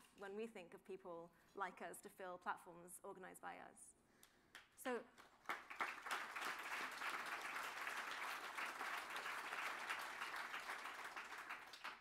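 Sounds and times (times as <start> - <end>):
audience applause: 5.4 - 12.0.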